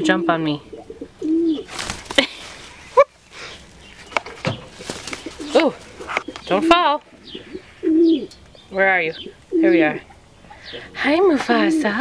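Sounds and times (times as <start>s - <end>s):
pigeon cooing: 0.0s - 1.8s, 5.1s - 8.4s, 9.2s - 12.0s.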